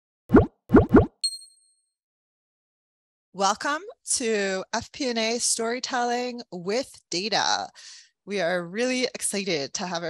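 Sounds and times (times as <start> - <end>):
quick pops rising in pitch: 0.3 - 1.2.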